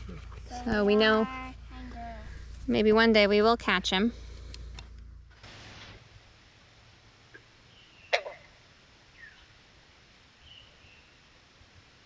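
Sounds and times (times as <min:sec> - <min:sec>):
thin bird whistle: 0:09.1 - 0:09.5.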